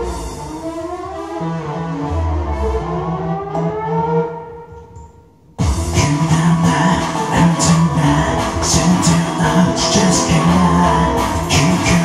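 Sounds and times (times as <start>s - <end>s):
band playing with steady beat: 5.6s - 12.0s
sustained melodic lines: 6.0s - 12.0s.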